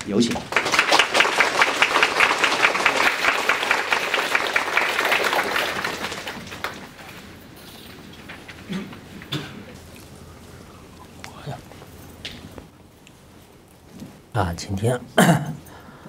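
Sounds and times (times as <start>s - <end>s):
audience applause: 0.3s - 7.4s.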